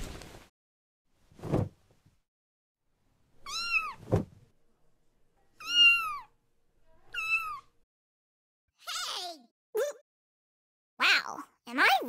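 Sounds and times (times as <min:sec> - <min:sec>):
dull thump: 0:01.4 - 0:01.8, 0:04.0 - 0:04.4
kitten meowing: 0:03.4 - 0:04.0, 0:05.6 - 0:06.3, 0:07.1 - 0:07.7.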